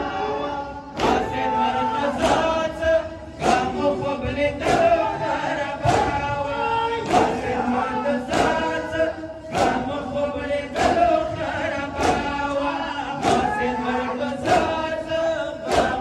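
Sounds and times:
men chanting through loudspeakers: 0:00.0 - 0:16.0
chest beating in unison: 0:00.9 - 0:13.8, 0:15.6 - 0:16.0.

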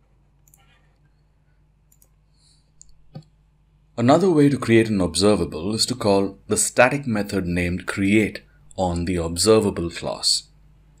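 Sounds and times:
faint short clicks: 0:01.9 - 0:02.2.

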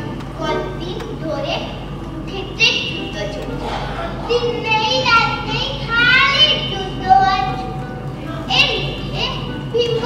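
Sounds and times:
child speaking loudly: 0:00.4 - 0:07.8, 0:08.4 - 0:10.0.

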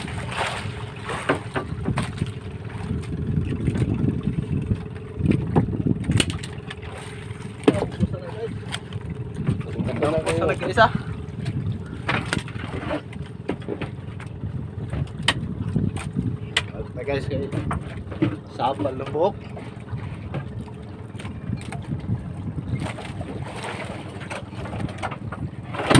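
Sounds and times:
sharp knocks in boat: 0:00.0 - 0:16.8, 0:17.4 - 0:25.9
boat engine running: 0:00.0 - 0:25.9.

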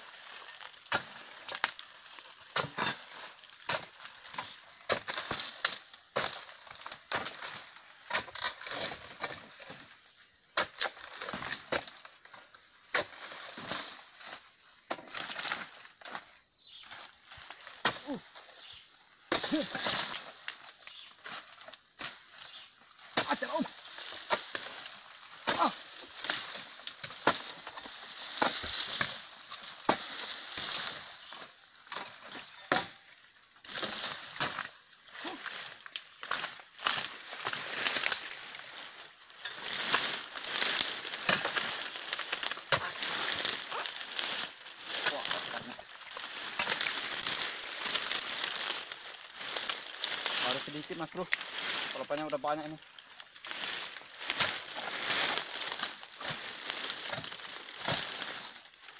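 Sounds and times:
dry fronds rustling and crackling: 0:00.0 - 0:58.9.

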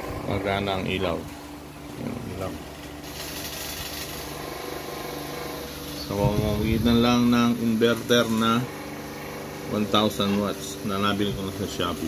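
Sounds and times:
electric fan running: 0:00.0 - 0:12.0.

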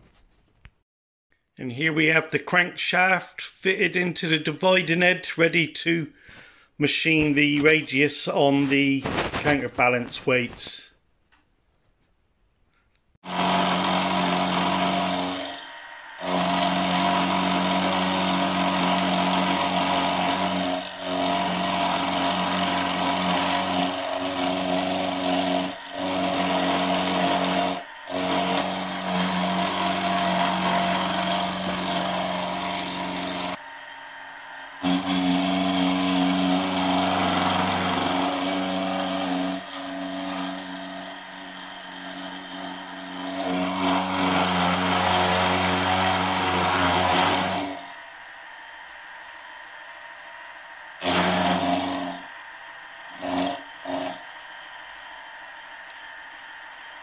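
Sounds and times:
milling machine cutting metal: 0:13.2 - 0:48.0, 0:48.6 - 0:57.0.

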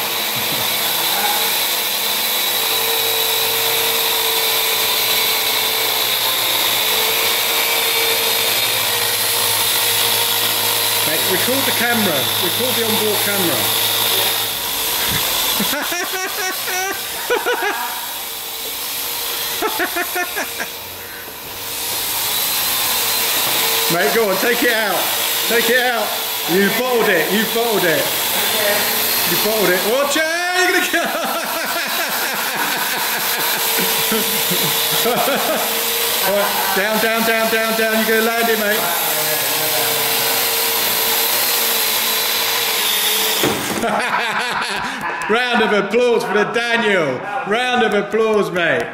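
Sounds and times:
drone propellers whirring: 0:00.0 - 0:44.1.

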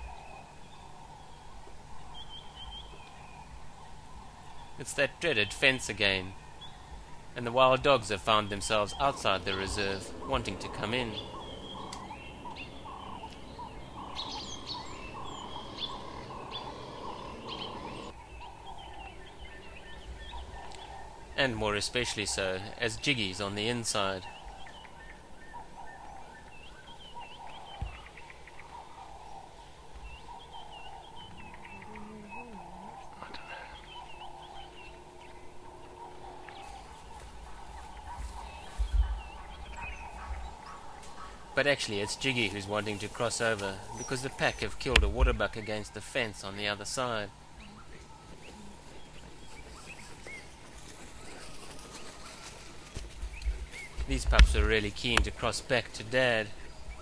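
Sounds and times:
wild dogs twittering: 0:00.0 - 0:57.0.

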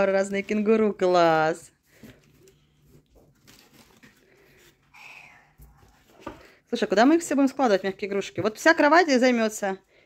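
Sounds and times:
plush toys rustling: 0:00.0 - 0:05.0.

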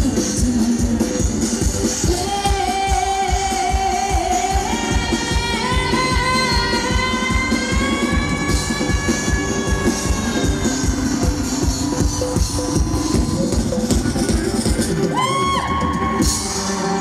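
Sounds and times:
fast drum-kit beat: 0:00.0 - 0:17.0
live pop band music: 0:00.0 - 0:17.0.

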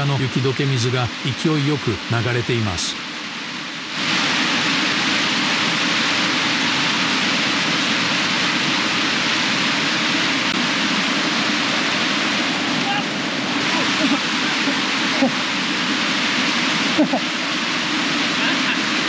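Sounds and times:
stream rushing over boulders: 0:00.0 - 0:19.0.

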